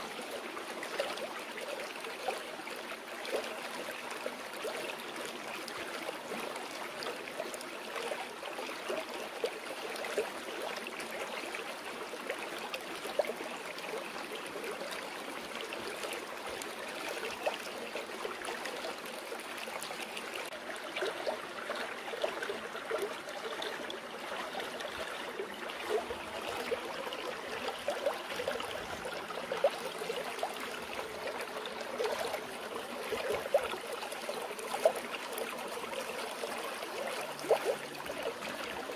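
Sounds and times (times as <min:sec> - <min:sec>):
running water babbling: 0:00.0 - 0:38.9
water gurgles and splashes: 0:00.0 - 0:38.9.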